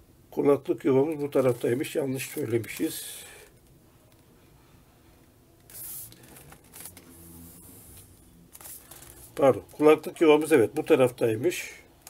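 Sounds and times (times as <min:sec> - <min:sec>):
plastic laptop handling rustle: 0:01.2 - 0:03.6, 0:05.7 - 0:07.2, 0:07.9 - 0:09.5.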